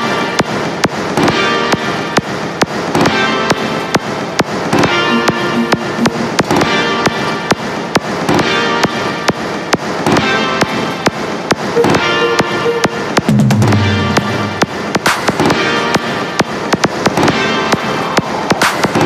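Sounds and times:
sharp percussion hits: 0:04.7 - 0:07.2, 0:11.6 - 0:16.1.

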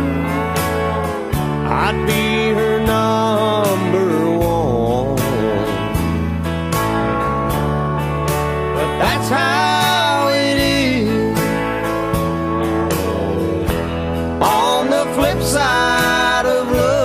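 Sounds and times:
drums and bass: 0:00.0 - 0:17.0
sliding steel guitar lead: 0:00.0 - 0:17.0.

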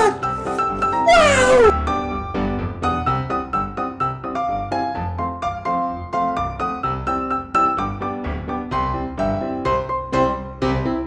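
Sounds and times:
bouncy piano tune: 0:00.0 - 0:11.0
long falling wail: 0:01.0 - 0:01.8.

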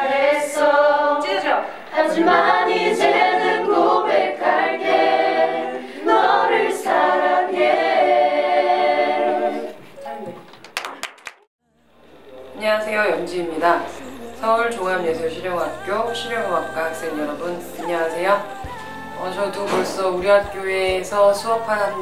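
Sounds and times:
unaccompanied singing voices: 0:00.0 - 0:10.0, 0:13.3 - 0:22.0.

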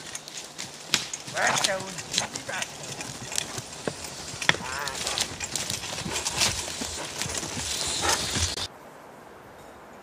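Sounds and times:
horse hoofbeats: 0:00.0 - 0:08.7
twigs and wood cracking: 0:00.0 - 0:08.7.

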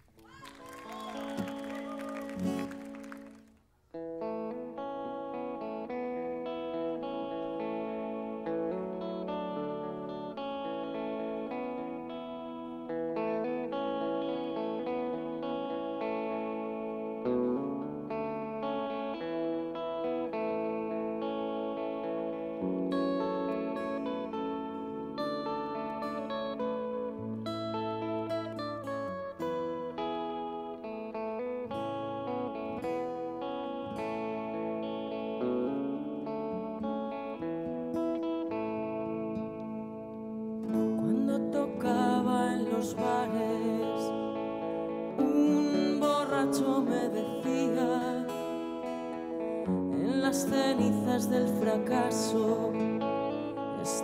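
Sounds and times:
acoustic guitar chords: 0:00.0 - 0:54.0
electric guitar with effects: 0:00.0 - 0:54.0.

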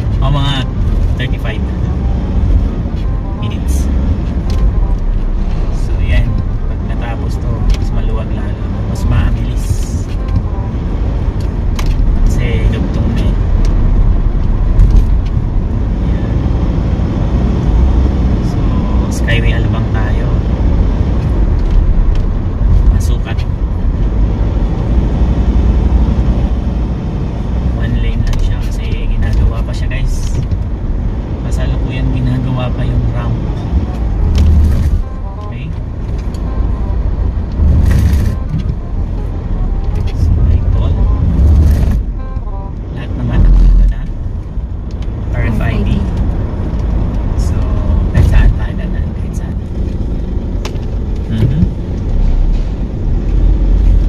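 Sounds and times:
road and engine rumble in car: 0:00.0 - 0:54.0.

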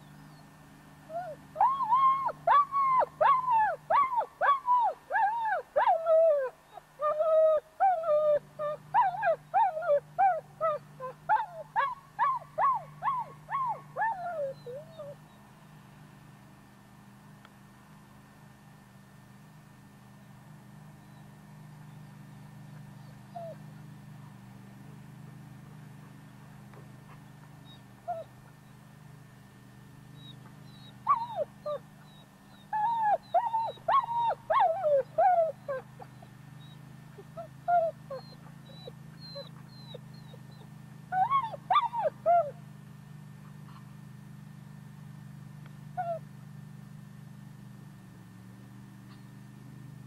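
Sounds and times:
dog whining: 0:01.1 - 0:15.3, 0:23.0 - 0:23.7, 0:27.6 - 0:28.3, 0:30.2 - 0:42.6, 0:46.0 - 0:46.2
dog yipping: 0:01.1 - 0:15.3, 0:23.0 - 0:23.8, 0:27.6 - 0:28.3, 0:30.2 - 0:42.6, 0:46.0 - 0:46.2.

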